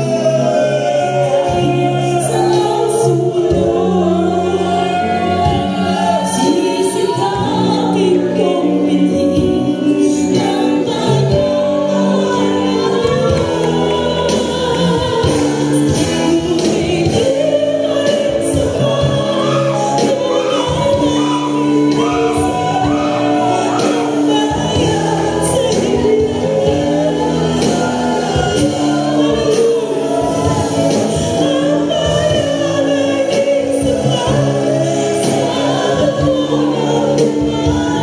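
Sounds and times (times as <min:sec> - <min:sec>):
church choir singing: 0:00.0 - 0:38.0.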